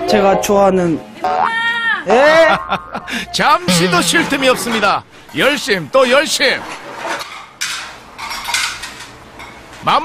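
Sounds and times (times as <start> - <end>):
dishes clattering: 3.7 - 5.0, 6.6 - 9.7.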